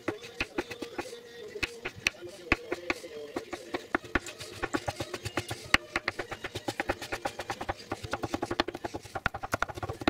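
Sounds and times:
knife chopping on wooden board: 0.0 - 10.0.

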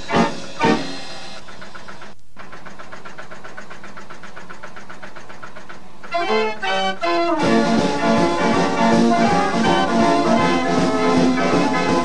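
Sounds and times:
dance organ chords: 0.0 - 2.2, 5.7 - 12.0
organ machinery clattering: 0.0 - 12.0.

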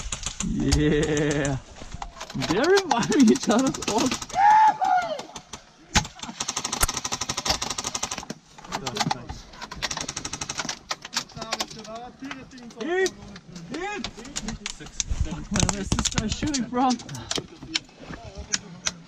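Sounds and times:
airsoft guns firing: 2.3 - 4.4
players shouting: 4.3 - 5.4.

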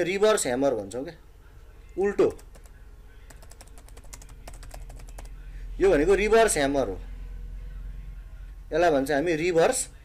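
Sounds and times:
typing on computer keyboard: 2.3 - 2.7, 3.3 - 5.3.

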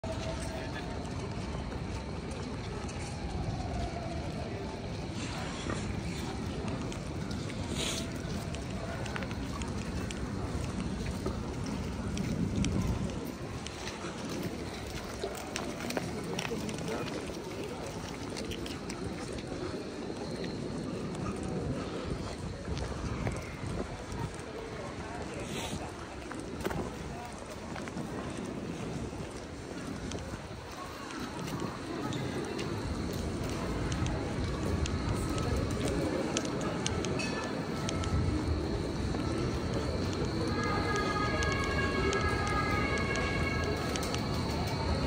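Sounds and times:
faint voices of passers-by: 0.0 - 45.0
low rumble of traffic: 0.0 - 45.0
wind on microphone: 21.1 - 30.7.

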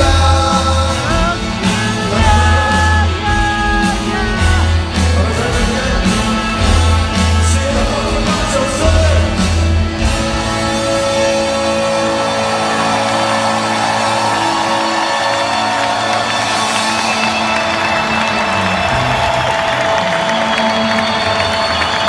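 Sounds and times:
rock band sustained chord: 0.0 - 22.0
crowd cheering and whooping: 10.2 - 22.0.

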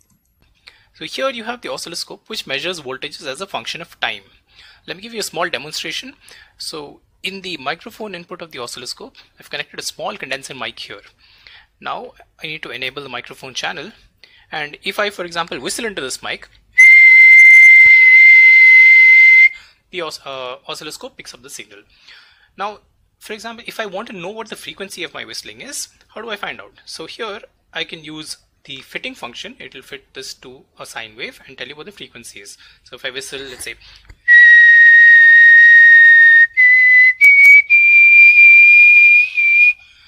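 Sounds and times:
person whistling high note: 16.8 - 19.6, 34.2 - 39.8.

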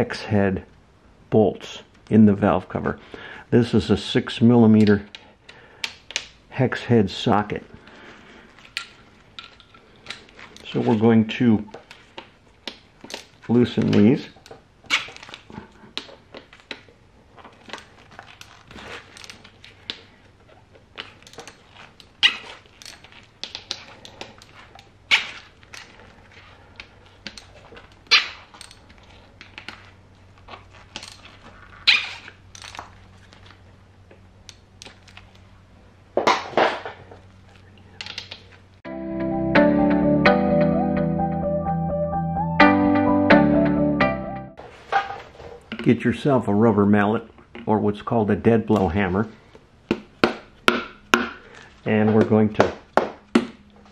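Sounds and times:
background music: 38.9 - 44.6.

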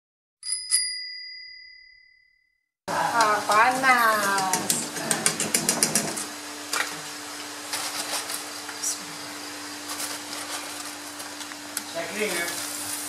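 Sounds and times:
gas burner hum and hiss: 2.9 - 13.0.

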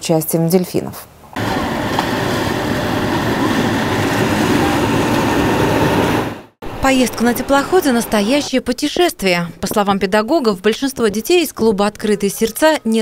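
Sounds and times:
ship engine rumble: 1.4 - 8.5.

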